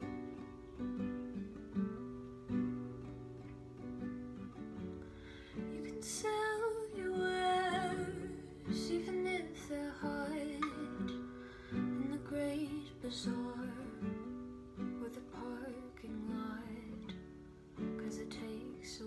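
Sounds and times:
acoustic guitar strumming: 0:00.0 - 0:19.0.

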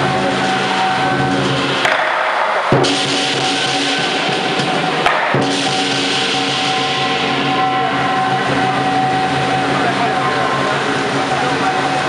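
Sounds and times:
percussion band with drum and cymbals: 0:00.0 - 0:12.0.

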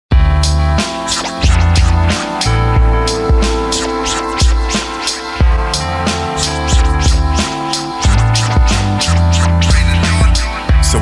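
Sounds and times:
instrumental hip hop beat: 0:00.1 - 0:11.0
turntable scratches: 0:00.4 - 0:11.0.

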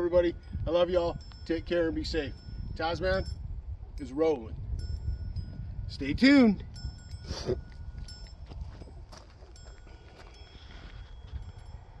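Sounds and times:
high ringing tones: 0:00.0 - 0:04.1, 0:04.7 - 0:12.0.

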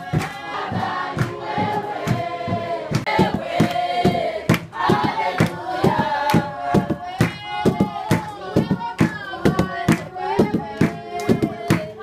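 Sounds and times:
congregation singing: 0:00.0 - 0:12.0
drums beaten with sticks: 0:00.0 - 0:12.0
hand clapping: 0:00.1 - 0:02.3, 0:02.9 - 0:12.0.

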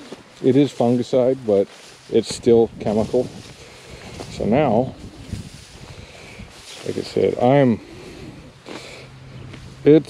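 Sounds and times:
person speaking: 0:00.0 - 0:05.2, 0:06.4 - 0:08.1
wheat stalks rustling: 0:00.0 - 0:10.0
wind on microphone: 0:02.4 - 0:06.7.

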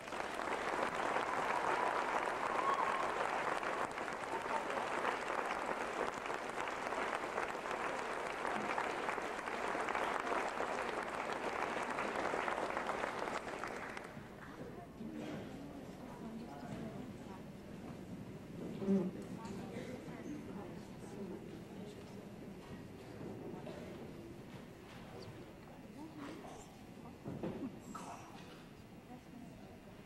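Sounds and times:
audience applauding: 0:00.0 - 0:14.5.

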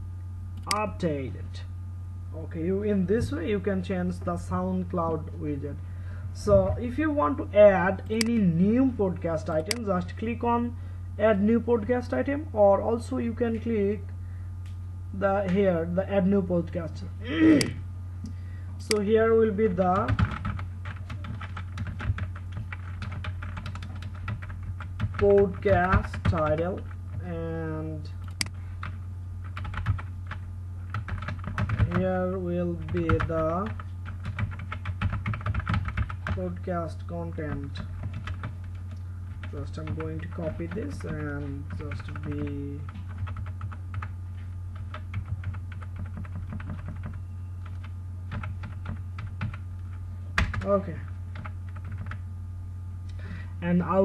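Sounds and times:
steady low hum: 0:00.0 - 0:54.0
keyboard keys clicking: 0:40.7 - 0:44.1, 0:44.8 - 0:49.6, 0:51.4 - 0:52.2.

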